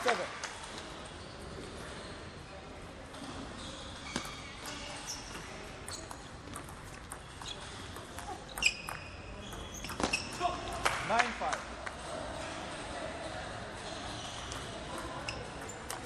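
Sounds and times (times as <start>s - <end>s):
shoes squeaking on floor: 3.2s - 10.8s, 13.8s - 16.0s
table tennis ball clicking: 4.6s - 11.0s, 14.4s - 16.0s.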